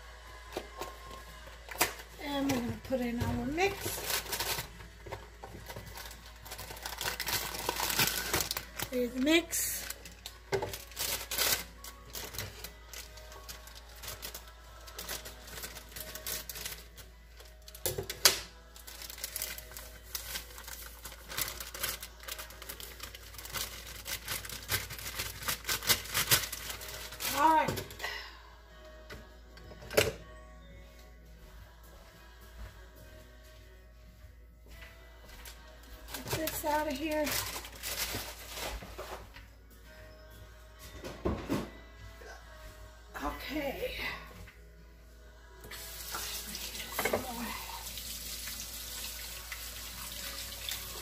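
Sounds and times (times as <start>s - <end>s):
plastic bag rustling and crinkling: 2.2s - 28.0s, 36.0s - 39.3s.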